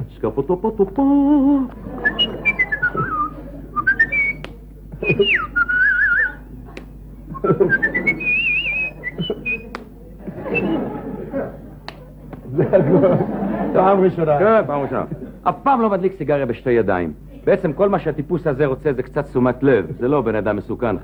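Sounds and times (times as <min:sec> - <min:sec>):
humming voice: 0:00.0 - 0:12.6
man whistling: 0:02.0 - 0:06.4, 0:07.3 - 0:09.8, 0:10.5 - 0:10.8
mouth clicks: 0:02.2 - 0:09.9.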